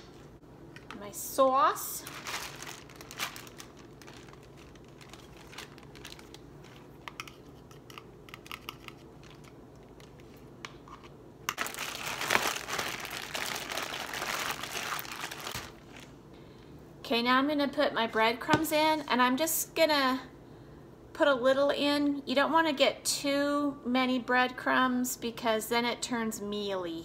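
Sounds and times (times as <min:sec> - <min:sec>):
plastic bag crinkling: 0:01.9 - 0:07.4, 0:08.4 - 0:10.4, 0:11.5 - 0:16.2.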